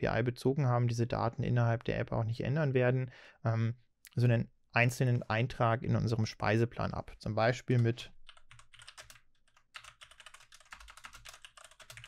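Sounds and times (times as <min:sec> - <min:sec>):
fast typing on keyboard: 0:07.8 - 0:12.0.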